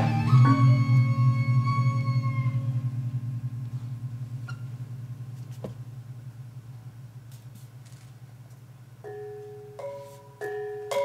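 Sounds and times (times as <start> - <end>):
metallophone tones: 0.0 - 3.0, 9.0 - 11.0
low gong hum: 0.0 - 7.8.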